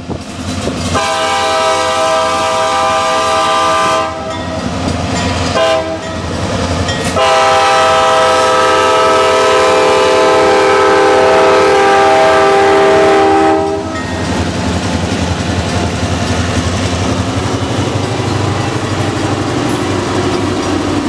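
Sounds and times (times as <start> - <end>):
diesel locomotive rumble: 0.0 - 21.0
locomotive air horn blasts: 0.9 - 4.4, 5.5 - 6.1, 7.1 - 14.0.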